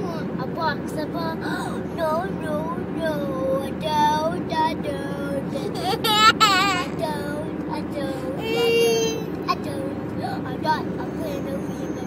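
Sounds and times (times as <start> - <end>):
boy singing: 0.0 - 12.0
car cabin road noise: 0.0 - 12.0.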